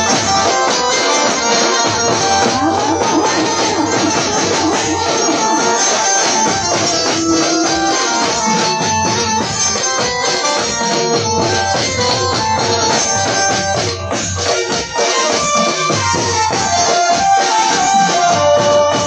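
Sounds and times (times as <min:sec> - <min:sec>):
drum beat: 0:00.0 - 0:19.0
electronic keyboard melody: 0:00.0 - 0:19.0.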